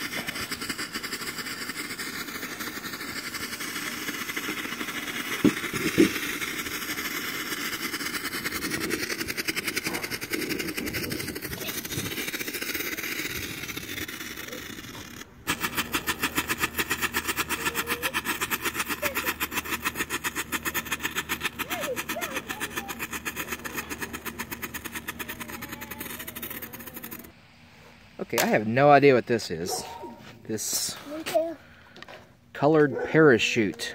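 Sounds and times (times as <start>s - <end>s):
firework popping in sharp cracks: 0.0s - 27.2s, 28.3s - 28.8s
smoke bomb hissing: 0.0s - 31.2s.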